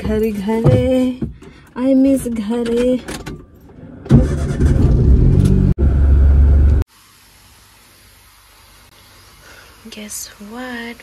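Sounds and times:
car engine starting and running: 0:02.2 - 0:06.9.

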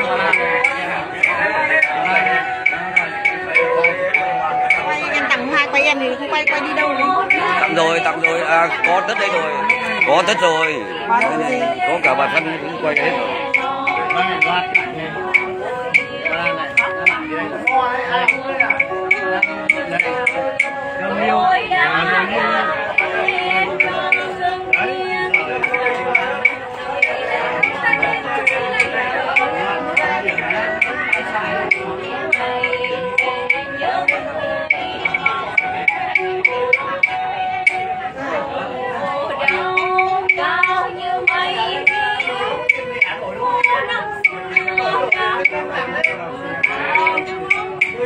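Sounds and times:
woman singing long bending notes: 0:00.0 - 0:12.4, 0:13.0 - 0:48.0
plucked lutes: 0:00.0 - 0:48.0
steady ticking beat: 0:00.0 - 0:48.0.

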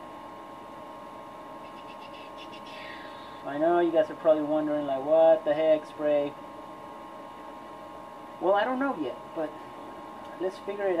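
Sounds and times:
low room hum and hiss: 0:00.0 - 0:11.0.

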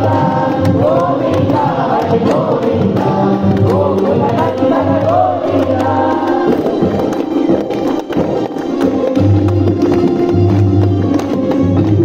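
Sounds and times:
voices singing in chorus: 0:00.0 - 0:07.3
percussion strokes: 0:00.0 - 0:12.0.

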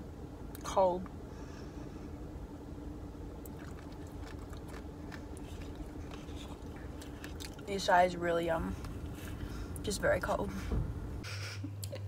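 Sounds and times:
low hum inside a car: 0:00.0 - 0:12.0
person chewing crunchy food: 0:03.4 - 0:07.7.

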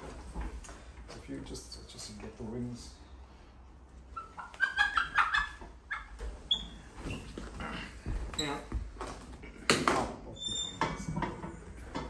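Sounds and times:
hen squawking: 0:04.2 - 0:06.1.

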